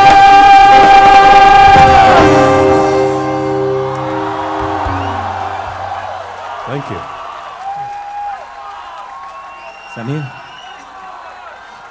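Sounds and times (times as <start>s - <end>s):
band final chord ringing: 0.7s - 6.3s.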